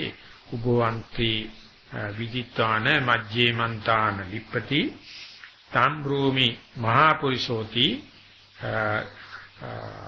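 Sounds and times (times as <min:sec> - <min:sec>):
man uttering drawn-out syllables: 0:08.6 - 0:10.0.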